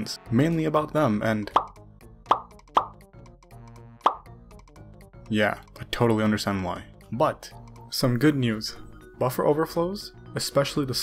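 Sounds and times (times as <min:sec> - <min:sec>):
background music: 0:00.0 - 0:11.0
plop sound effect: 0:02.3 - 0:03.0, 0:04.0 - 0:04.3.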